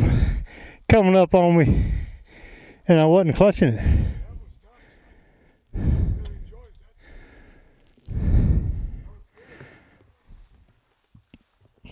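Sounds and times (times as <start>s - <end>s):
man breathing heavily: 0.0s - 0.9s, 1.5s - 11.1s.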